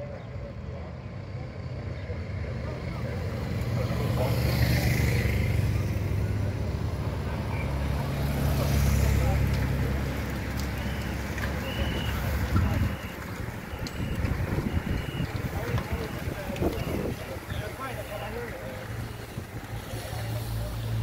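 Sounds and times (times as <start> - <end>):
motorcycle and car engines humming: 0.0 - 21.0
spectators' voices: 0.0 - 21.0.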